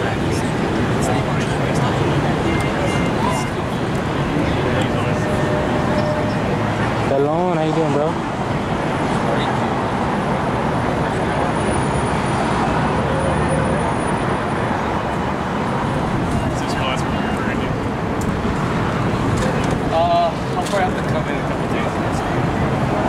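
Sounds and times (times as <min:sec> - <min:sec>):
indistinct voices: 0:00.0 - 0:23.0
passing traffic: 0:00.0 - 0:23.0.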